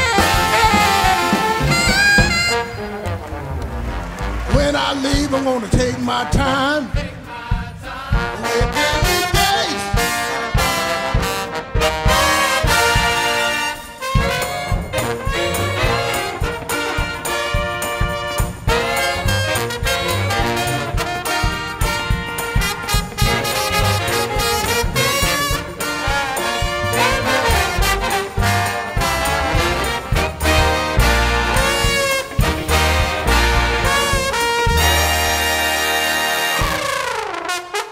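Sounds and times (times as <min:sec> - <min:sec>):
jazz big band playing swing: 0:00.0 - 0:37.9
trombone lead: 0:00.0 - 0:37.9.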